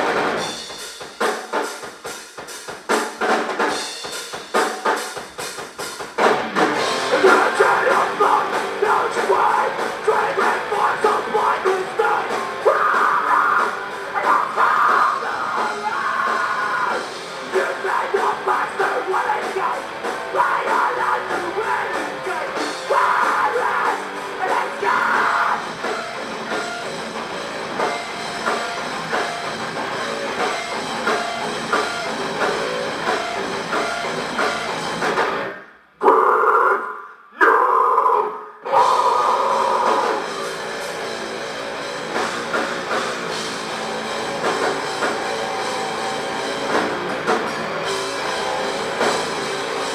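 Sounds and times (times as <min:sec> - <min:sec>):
live metal band playing: 0:00.0 - 0:49.9
vocalist yelling into microphone: 0:07.1 - 0:17.0, 0:17.6 - 0:25.6, 0:36.0 - 0:40.2.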